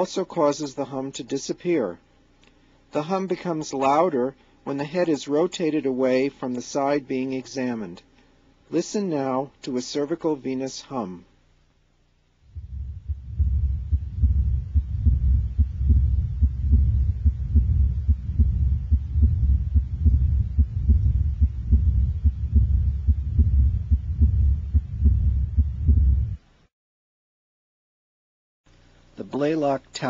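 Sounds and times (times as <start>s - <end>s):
continuous low hum: 0.0s - 26.7s
heartbeat pulsing: 12.5s - 26.4s.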